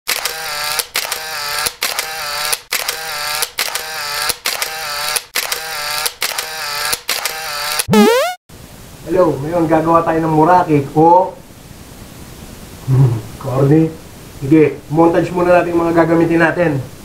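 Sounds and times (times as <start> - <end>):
repeated pitched sound clip: 7.9 - 8.4.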